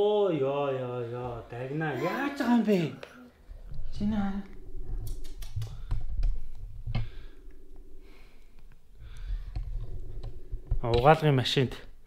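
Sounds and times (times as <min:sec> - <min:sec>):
man speaking loudly: 0:00.0 - 0:03.0.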